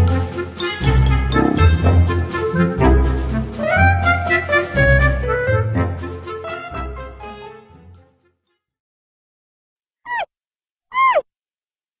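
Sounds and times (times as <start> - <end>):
squeaky calls sliding down: 10.1 - 10.3, 10.9 - 11.2.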